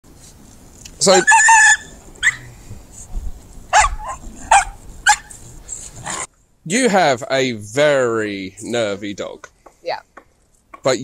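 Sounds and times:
dog high yelp: 0:01.1 - 0:02.5, 0:03.7 - 0:05.4
dog barking: 0:01.2 - 0:02.5, 0:03.7 - 0:05.3.

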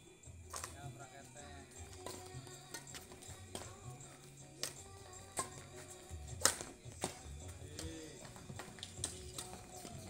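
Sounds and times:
rackets hitting shuttlecock: 0:00.5 - 0:00.8, 0:01.8 - 0:10.0.

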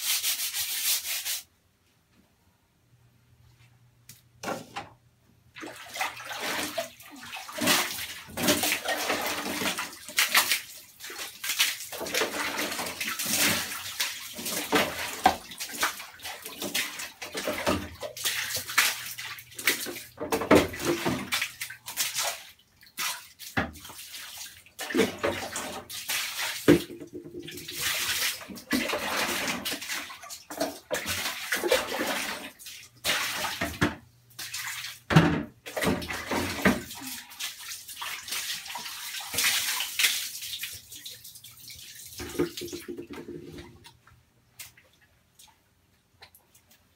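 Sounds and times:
water splashing on tiled floor: 0:05.6 - 0:35.0, 0:35.7 - 0:43.4.

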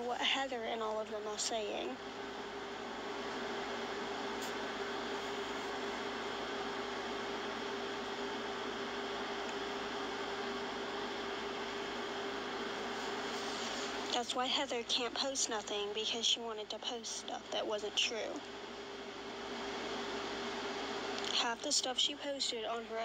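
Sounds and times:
constant low hum: 0:00.0 - 0:23.0.

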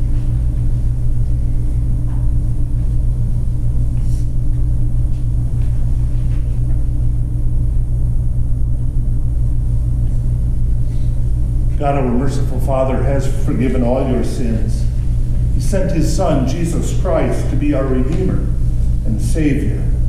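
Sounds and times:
low hum and rumble: 0:00.0 - 0:20.0.

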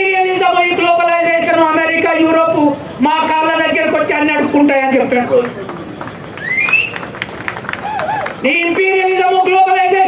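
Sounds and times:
open-air gathering background noise: 0:00.0 - 0:10.0.

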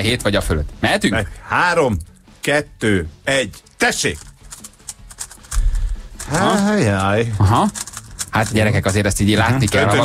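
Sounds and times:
rubik's cube clicking: 0:04.2 - 0:06.7, 0:07.6 - 0:08.6.

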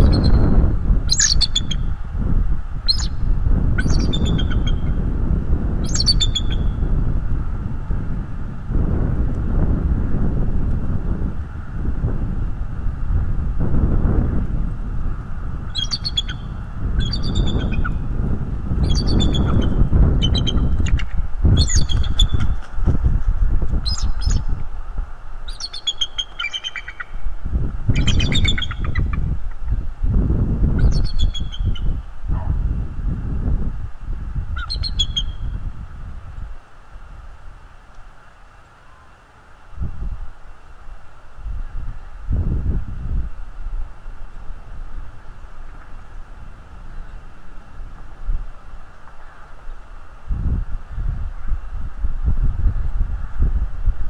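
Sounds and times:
eagle chirping calls: 0:00.0 - 0:01.9, 0:02.9 - 0:03.2, 0:03.8 - 0:05.0, 0:05.8 - 0:06.8, 0:15.7 - 0:18.0, 0:18.8 - 0:22.6, 0:23.8 - 0:24.5, 0:25.5 - 0:27.2, 0:27.9 - 0:29.3, 0:30.8 - 0:32.0, 0:34.5 - 0:35.5
wind rumble on microphone: 0:00.0 - 0:38.2, 0:39.6 - 0:54.0.

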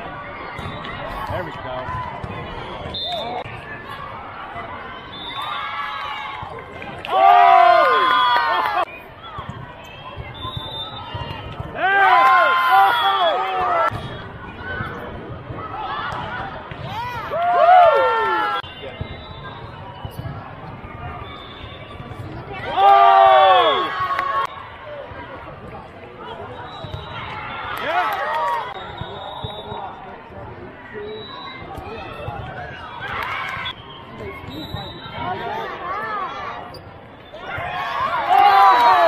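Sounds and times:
murmur of voices: 0:08.8 - 0:39.0.

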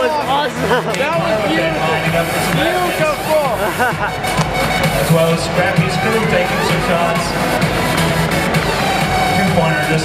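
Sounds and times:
crowd voices in echoing arena: 0:00.0 - 0:10.0
person laughing: 0:00.5 - 0:01.5, 0:02.2 - 0:05.4.

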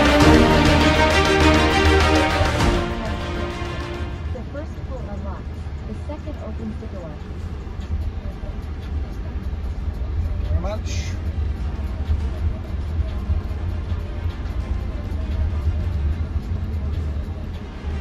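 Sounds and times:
road and tyre rumble in car: 0:04.3 - 0:18.0.

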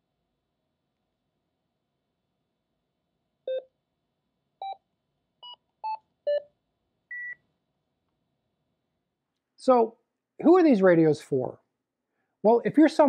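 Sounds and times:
transceiver keypad beeps: 0:07.1 - 0:07.4.

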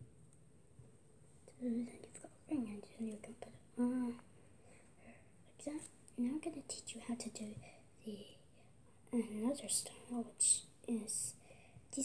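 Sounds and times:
girl speaking: 0:01.5 - 0:04.2, 0:05.6 - 0:08.4, 0:09.1 - 0:12.0.

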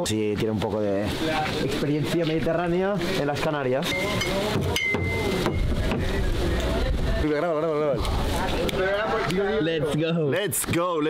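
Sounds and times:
faint voices: 0:00.4 - 0:11.0
glass bottles clinking: 0:03.9 - 0:05.7
wind rumble on microphone: 0:05.5 - 0:07.4.

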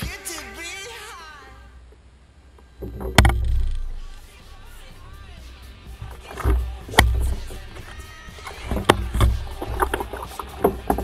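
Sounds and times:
water splashing against hull: 0:02.8 - 0:05.1, 0:05.9 - 0:11.0
shark jaws snapping: 0:06.1 - 0:11.0.

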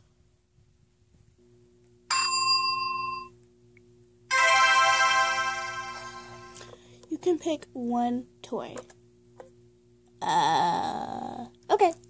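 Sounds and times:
electronic bell-like ding: 0:02.1 - 0:03.3, 0:04.3 - 0:06.6
electronic chime chord: 0:04.3 - 0:06.7.

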